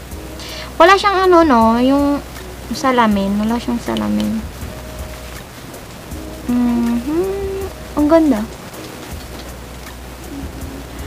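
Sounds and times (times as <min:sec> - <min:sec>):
steady background hiss: 0:00.0 - 0:11.0
woman humming faintly: 0:06.4 - 0:07.8.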